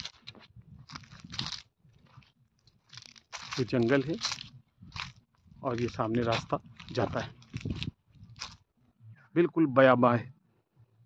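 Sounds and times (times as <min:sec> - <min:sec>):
footsteps crunching on dry leaves: 0:00.0 - 0:08.6.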